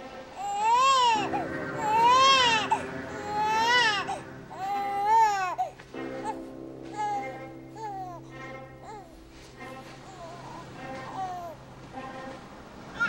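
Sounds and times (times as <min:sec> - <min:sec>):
soft sustained music: 0:00.0 - 0:13.0
infant crying: 0:00.4 - 0:08.2, 0:08.8 - 0:09.2, 0:10.1 - 0:11.6.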